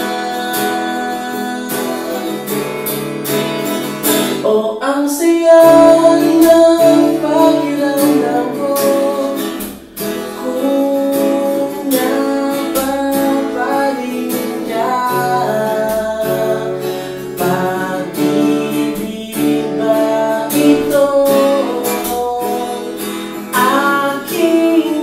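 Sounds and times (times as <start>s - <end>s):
man singing: 0.0s - 3.1s, 4.3s - 25.0s
acoustic guitar strumming: 0.0s - 25.0s.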